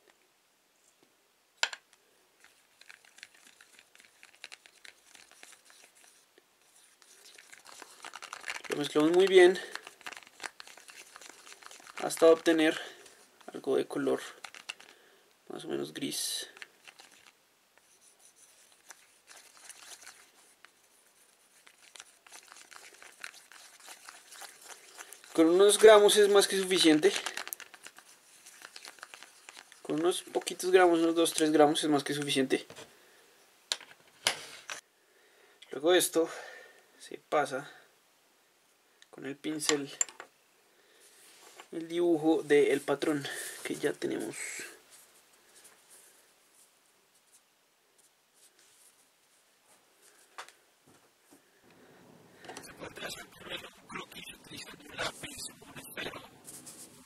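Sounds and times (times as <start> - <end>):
stick stirring and scraping cup: 2.4 - 14.9, 16.2 - 32.2.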